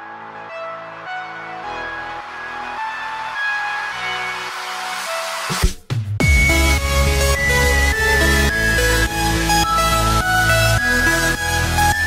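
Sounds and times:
slow held-note background music: 0.0 - 5.5, 6.2 - 12.0
electronic music with heavy bass: 0.0 - 12.0.

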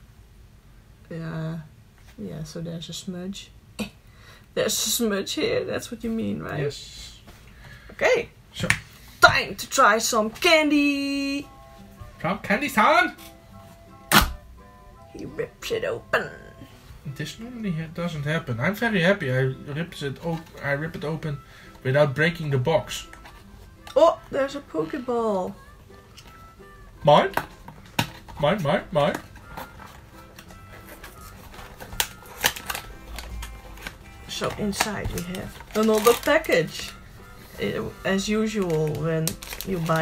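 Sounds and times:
faint background music: 1.0 - 40.0.

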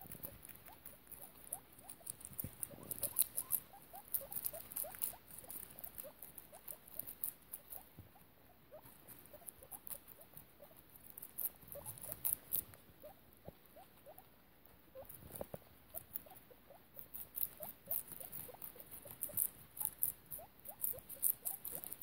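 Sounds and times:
guinea pigs crunching lettuce: 0.0 - 22.0.

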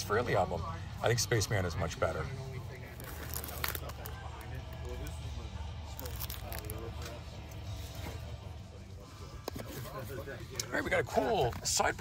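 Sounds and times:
faint background music: 0.0 - 12.0
faint background voices: 0.0 - 12.0.

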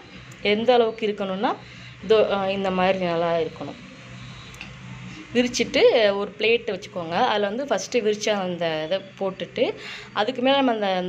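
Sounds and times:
woman speaking: 0.0 - 3.8, 5.2 - 11.0.

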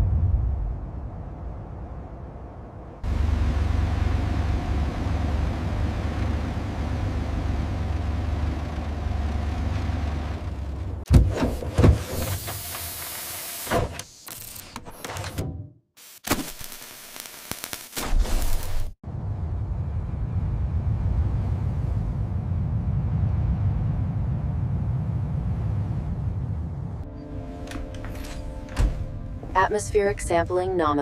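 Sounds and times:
low rumble with hiss: 0.0 - 11.1, 19.0 - 31.0
robot servo whirs and clicks: 12.0 - 15.4.

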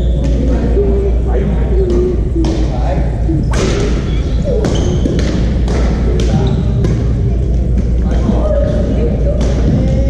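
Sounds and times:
low hum: 0.0 - 10.0
racket hitting shuttlecock: 4.7 - 7.1.

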